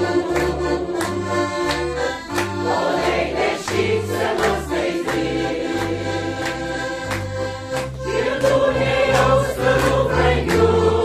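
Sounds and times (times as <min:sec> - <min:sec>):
mixed choir singing: 0:00.0 - 0:01.4, 0:02.3 - 0:07.2, 0:08.0 - 0:11.0
piano accordion bass rhythm: 0:00.0 - 0:11.0.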